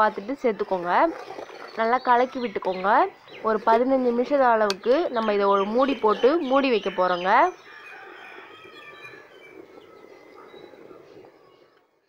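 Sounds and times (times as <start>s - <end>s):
pot simmering bubbling hiss: 0.0s - 11.8s
small birds chirping: 0.2s - 12.0s.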